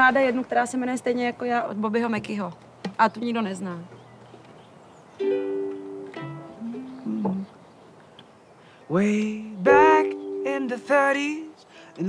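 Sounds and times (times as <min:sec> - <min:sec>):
ukulele chords strummed: 0:05.2 - 0:07.5, 0:09.7 - 0:11.3.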